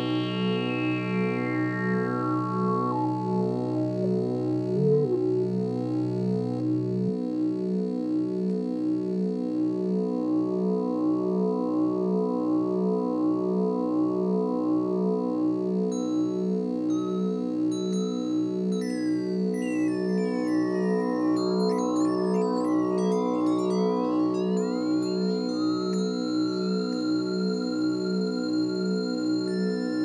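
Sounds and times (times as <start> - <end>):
pulsing synthesizer drone: 0.0 - 30.0.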